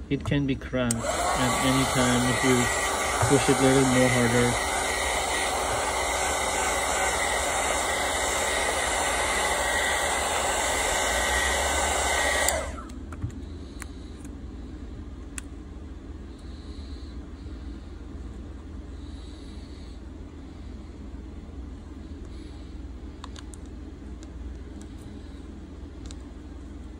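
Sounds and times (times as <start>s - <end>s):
heat gun blowing: 0.9s - 13.0s.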